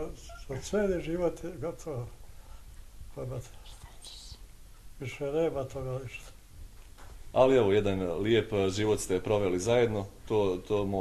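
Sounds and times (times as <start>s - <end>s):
soft hissing sh sound: 0.1s - 6.5s.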